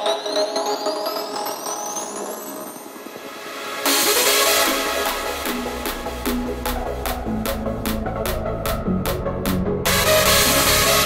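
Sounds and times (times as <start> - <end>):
held synth chords: 0.0 - 11.0.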